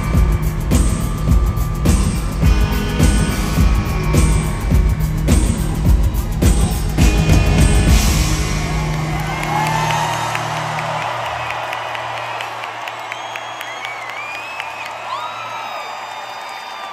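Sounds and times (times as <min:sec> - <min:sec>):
arena crowd cheering and whistling: 0:00.0 - 0:16.9.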